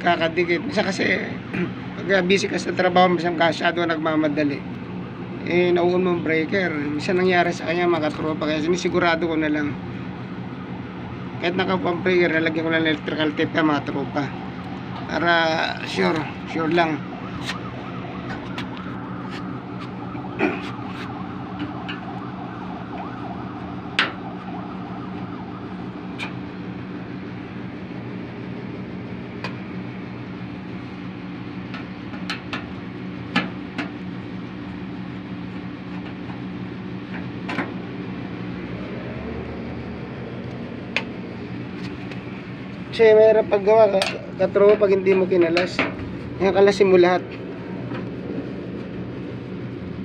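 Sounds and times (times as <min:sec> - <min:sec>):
low machine hum: 0:00.0 - 0:50.0.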